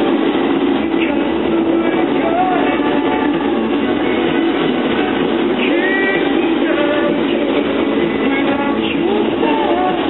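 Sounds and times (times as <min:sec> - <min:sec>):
train running on rails: 0:00.0 - 0:10.0.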